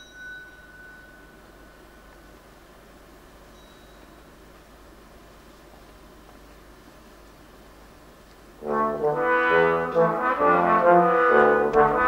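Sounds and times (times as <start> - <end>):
thin high ringing tone: 0.0 - 4.9
low hall noise: 0.0 - 12.0
brass ensemble chord: 8.6 - 12.0.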